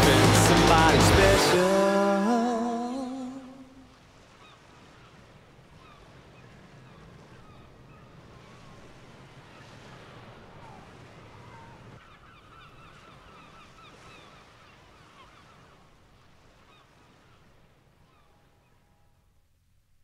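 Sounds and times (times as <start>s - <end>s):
steady rushing noise: 0.0s - 1.7s.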